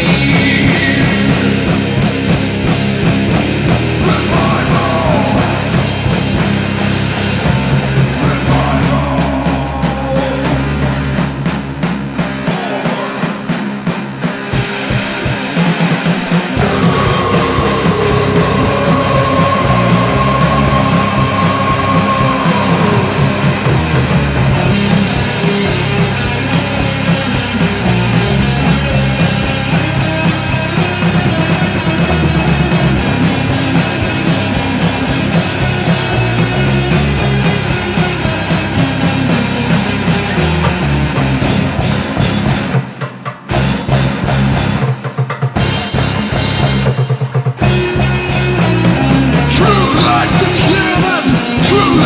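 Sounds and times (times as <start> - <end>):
heavy metal guitars and drums: 0.0 - 52.0
metal-punk band playing: 0.0 - 52.0.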